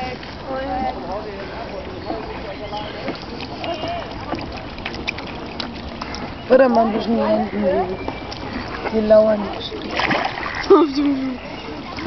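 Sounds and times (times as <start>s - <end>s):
faint murmured voices: 0.0s - 12.0s
small splashes: 0.0s - 12.0s
water lapping against canoe hull: 0.0s - 12.0s.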